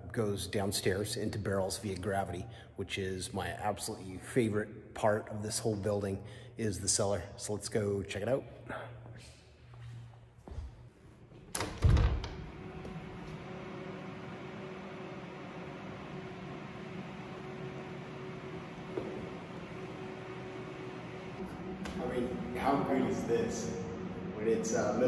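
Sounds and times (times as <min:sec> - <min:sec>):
machine hum: 0:11.0 - 0:25.0.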